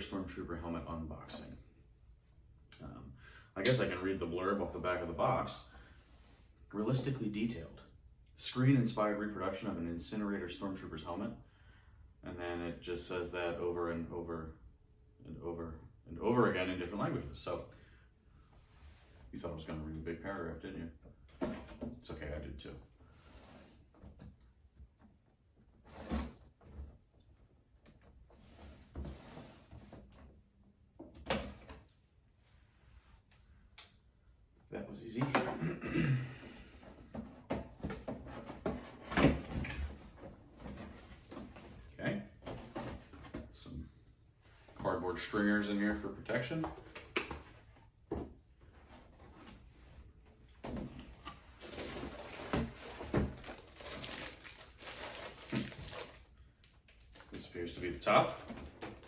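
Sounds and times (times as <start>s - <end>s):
cardboard and plastic rustling: 36.8s - 43.6s, 46.6s - 59.0s.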